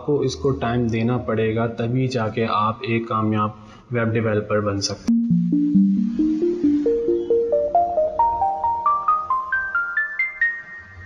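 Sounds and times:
mallet percussion jingle: 5.1 - 11.0.

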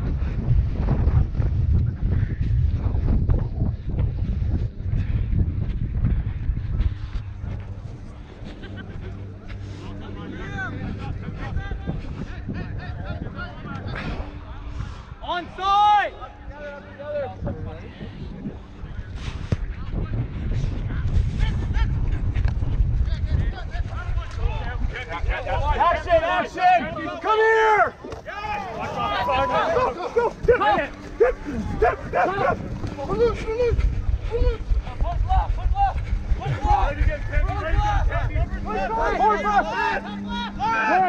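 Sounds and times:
wind rumbling on microphone: 0.0 - 15.6, 16.2 - 41.0
players shouting: 25.4 - 33.8, 36.4 - 41.0.

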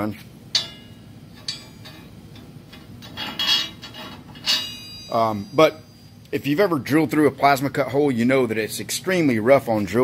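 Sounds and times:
steel stud clinking on steel plate: 0.5 - 5.8
metal rattle: 0.5 - 6.0.

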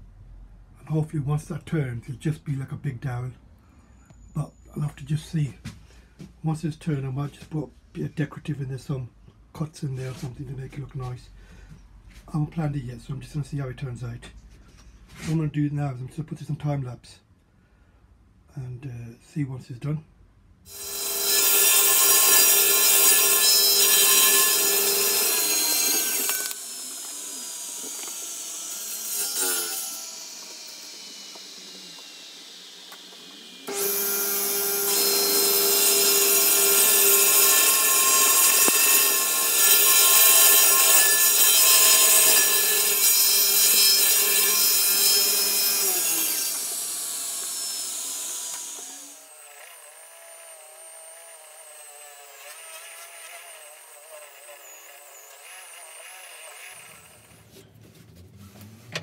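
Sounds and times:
table saw cutting wood: 20.7 - 57.7.

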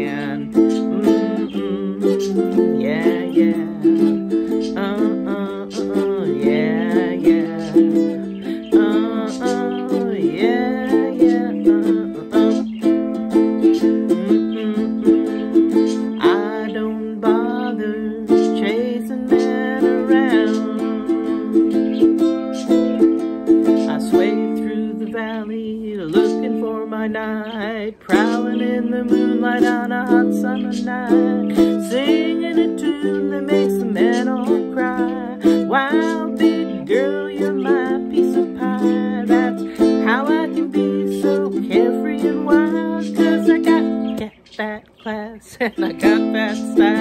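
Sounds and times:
ukulele strumming: 0.0 - 44.8, 45.5 - 47.0.

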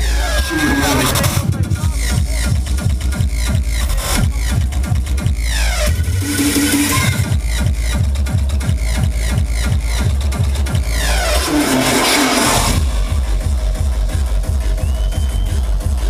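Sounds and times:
industrial hardcore music: 0.0 - 16.0.

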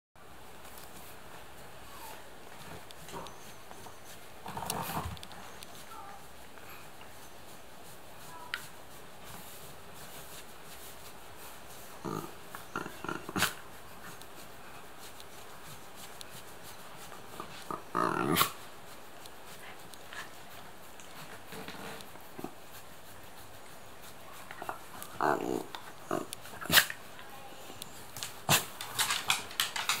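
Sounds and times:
dog claws clicking on wooden floor: 28.1 - 30.0.

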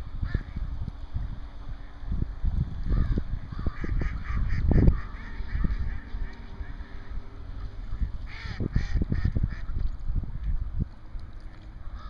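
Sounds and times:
wind buffeting microphone: 0.0 - 12.0
waterfowl calling: 2.9 - 9.8.

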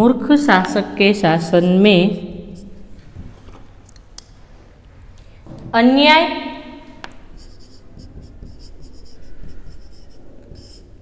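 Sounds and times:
marker pen writing on whiteboard: 2.2 - 3.0, 7.0 - 11.0.

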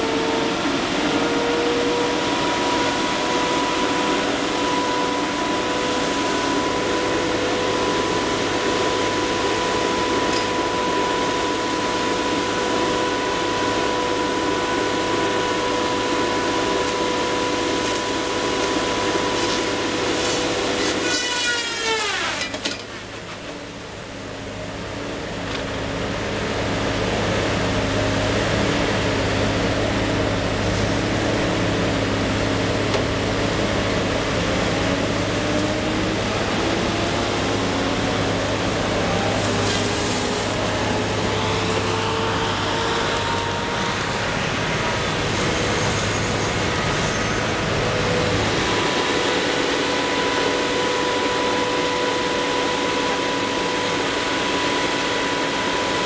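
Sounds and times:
tree harvester engine and hydraulics: 0.0 - 56.0.

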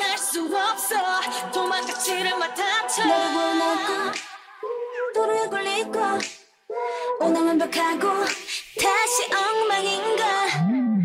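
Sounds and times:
woman singing pop vocals: 0.0 - 11.0.

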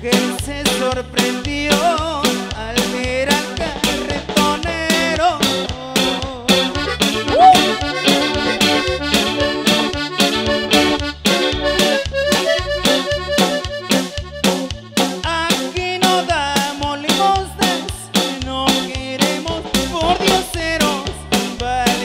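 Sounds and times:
bass and drums dance beat: 0.1 - 22.0
accordion melody: 4.8 - 22.0.

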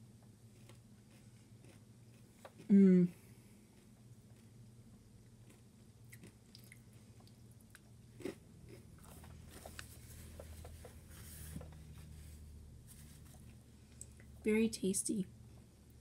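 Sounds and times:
candy being chewed crunching: 0.4 - 2.7, 3.6 - 10.4.

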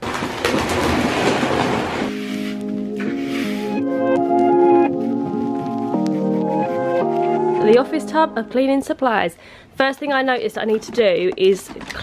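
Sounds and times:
debris rattling in vacuum: 0.0 - 2.1.

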